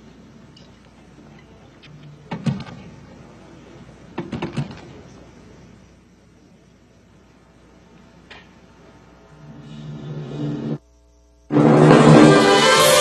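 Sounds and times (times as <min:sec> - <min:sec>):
faint steady background noise: 0:00.0 - 0:11.5.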